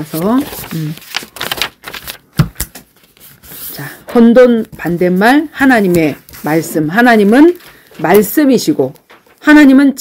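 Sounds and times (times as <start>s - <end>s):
paper pages turning: 0.0s - 9.4s.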